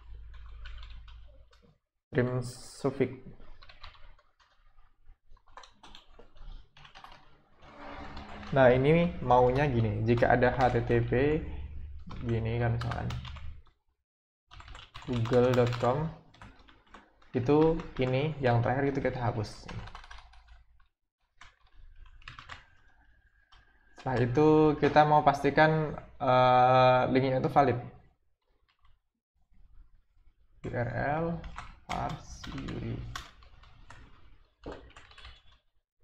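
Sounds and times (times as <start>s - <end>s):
computer keyboard typing: 0.0s - 1.7s, 3.3s - 13.7s, 14.5s - 20.8s, 21.4s - 25.9s, 30.8s - 35.6s.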